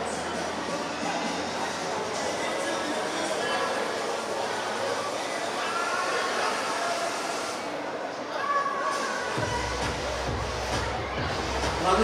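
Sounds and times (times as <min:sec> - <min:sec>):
background music: 0:09.4 - 0:12.0
heavy bass: 0:09.4 - 0:12.0.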